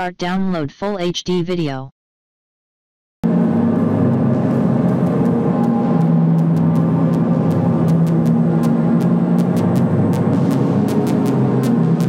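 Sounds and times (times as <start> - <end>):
low droning ambient music: 3.3 - 12.0.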